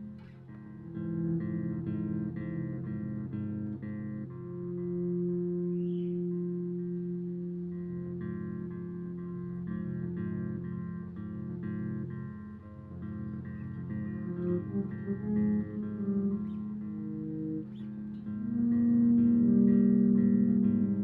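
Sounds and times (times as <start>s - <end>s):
electric bass plucked phrases: 0.0s - 21.0s.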